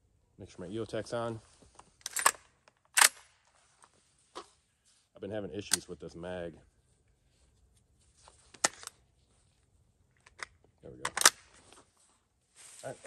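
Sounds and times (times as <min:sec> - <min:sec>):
rifle bolt metallic snap: 0:02.0 - 0:03.3, 0:10.3 - 0:11.5
rifle metallic clicks: 0:02.0 - 0:03.4, 0:10.2 - 0:11.5.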